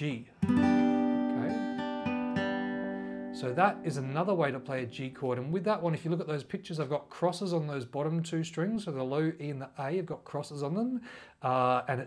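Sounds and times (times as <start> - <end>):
acoustic guitar chord ringing: 0.4 - 5.2.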